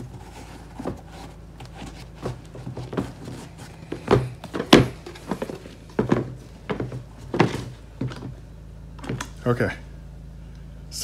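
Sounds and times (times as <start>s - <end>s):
shoe soles thunking on table: 2.2s - 8.4s.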